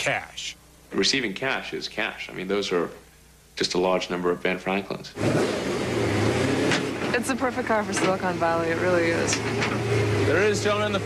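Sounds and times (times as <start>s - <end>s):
car engine running: 5.2s - 11.0s.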